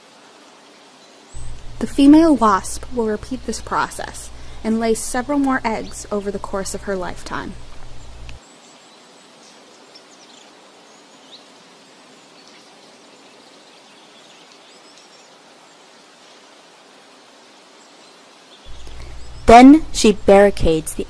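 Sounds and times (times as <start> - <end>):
soft steady hiss: 0.0 - 21.0
faint bird chirps: 18.6 - 20.8.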